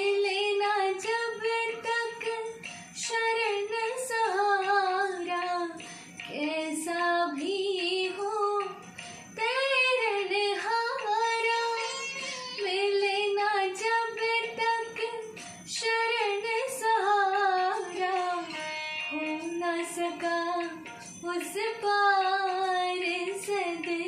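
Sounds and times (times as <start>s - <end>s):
woman singing devotional song: 0.0s - 24.0s.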